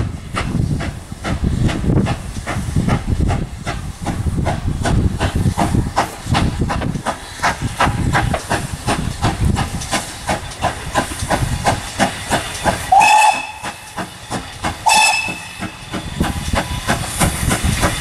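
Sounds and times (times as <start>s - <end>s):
steam hissing: 0.0s - 18.0s
steam locomotive exhaust beats: 0.0s - 18.0s
steam whistle blasts: 12.9s - 13.8s, 14.8s - 15.8s.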